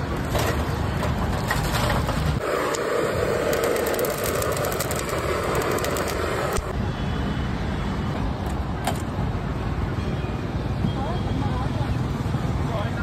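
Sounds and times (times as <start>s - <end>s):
traffic rumble: 0.0s - 13.0s
gas torch flame hissing: 2.4s - 6.7s.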